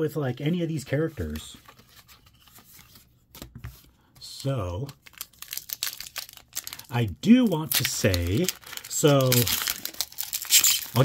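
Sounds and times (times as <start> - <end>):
foil wrapper crinkling: 4.9 - 11.0.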